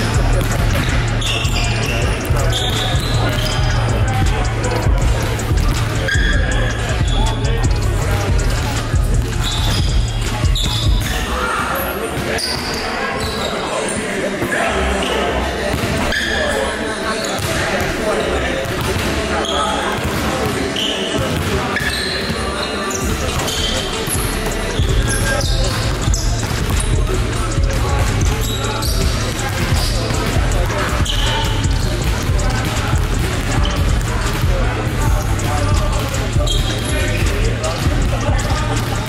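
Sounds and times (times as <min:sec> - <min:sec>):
bass-heavy music: 0:00.0 - 0:11.2, 0:24.2 - 0:39.0
echoing voices and chatter: 0:00.0 - 0:39.0
basketballs bouncing on hardwood: 0:00.2 - 0:06.3.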